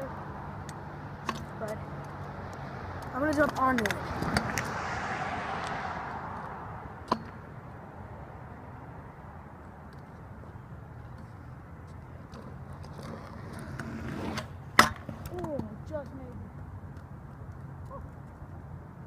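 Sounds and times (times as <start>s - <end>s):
scooter clacks: 0.0s - 4.8s, 7.0s - 7.5s, 11.0s - 18.6s
scooter wheels rolling on concrete: 0.0s - 19.0s.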